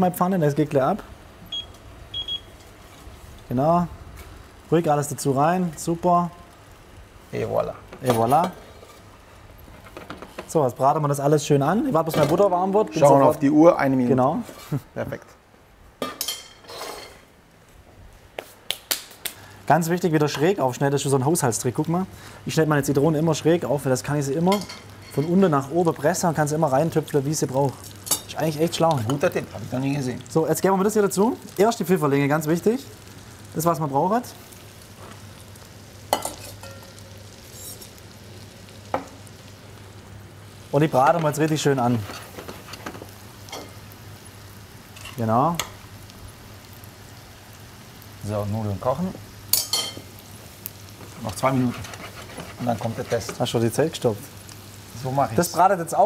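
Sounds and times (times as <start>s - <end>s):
mushrooms sizzling in a pan: 0.0s - 15.1s, 18.8s - 56.0s
metal spoon clinking on pot: 49.5s - 50.0s.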